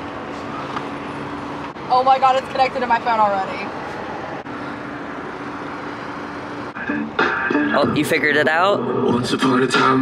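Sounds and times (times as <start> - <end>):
car engine idling: 0.0 - 8.5.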